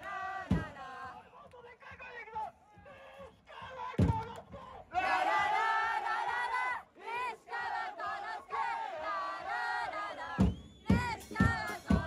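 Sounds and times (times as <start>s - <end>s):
crowd chanting in unison: 0.0s - 12.0s
thump: 0.5s - 0.8s, 4.0s - 4.4s.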